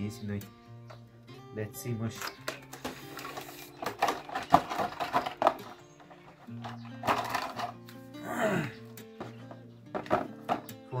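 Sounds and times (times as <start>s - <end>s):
background guitar music: 0.0s - 11.0s.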